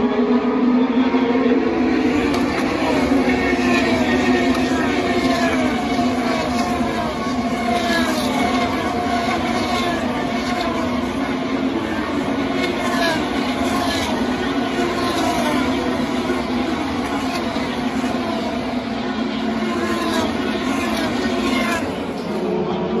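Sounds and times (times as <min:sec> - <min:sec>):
continuous engine drone: 0:00.0 - 0:23.0
race cars passing by: 0:00.0 - 0:23.0.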